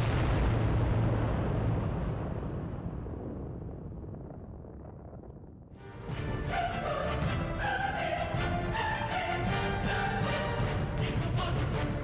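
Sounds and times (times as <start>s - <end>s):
explosion boom with rumble: 0.0s - 5.8s
music: 5.8s - 12.0s.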